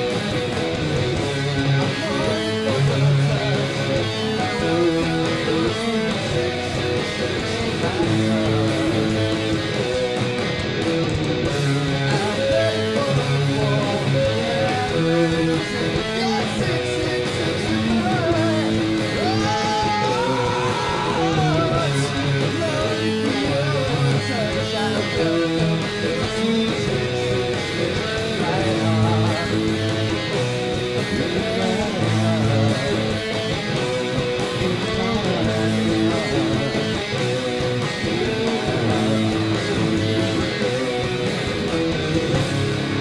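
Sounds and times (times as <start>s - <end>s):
bass notes: 0.0s - 43.0s
electric guitar playing: 0.0s - 43.0s
metal band recording: 0.0s - 43.0s.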